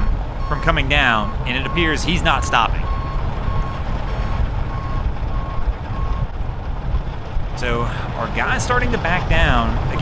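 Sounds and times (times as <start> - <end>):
truck reversing alarm beeping: 0.0 - 4.0, 4.6 - 6.3
low rumble: 0.0 - 10.0.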